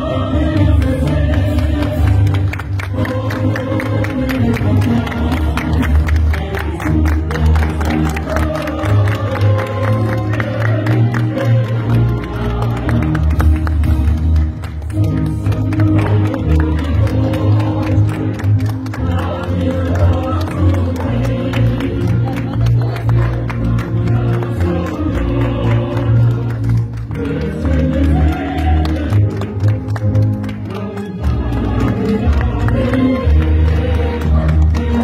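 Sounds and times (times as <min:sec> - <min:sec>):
crowd noise: 0:00.0 - 0:35.0
people clapping: 0:00.0 - 0:35.0.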